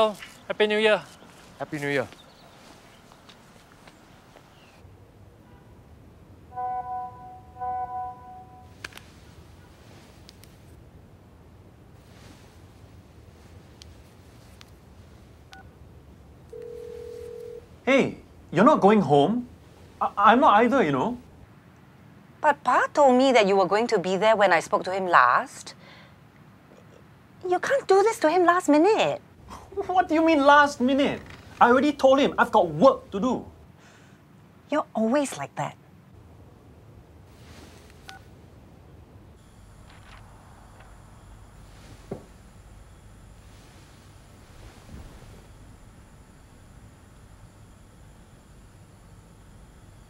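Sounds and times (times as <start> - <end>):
phone ringback tone: 6.5 - 8.7, 16.5 - 17.6.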